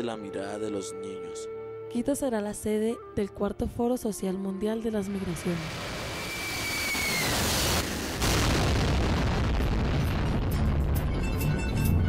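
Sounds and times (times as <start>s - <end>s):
jet airliner passing overhead: 5.0s - 8.2s.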